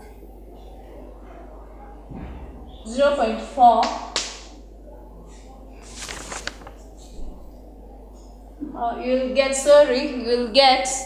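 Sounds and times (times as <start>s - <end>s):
low room noise: 0.0s - 11.0s
paper rustling: 5.8s - 7.4s.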